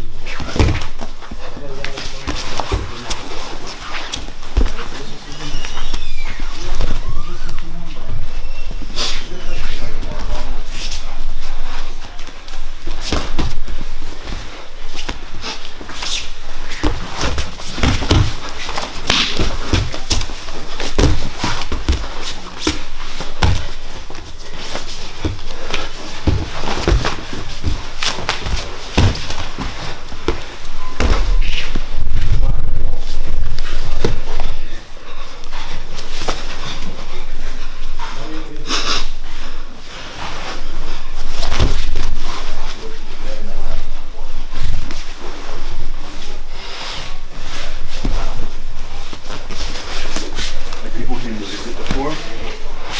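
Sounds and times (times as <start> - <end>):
bodies thumping on mats: 0.2 - 5.2, 12.6 - 32.5, 41.2 - 42.6.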